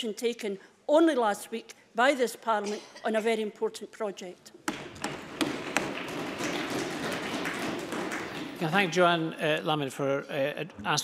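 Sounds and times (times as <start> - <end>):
small taps and knocks: 4.6 - 8.6.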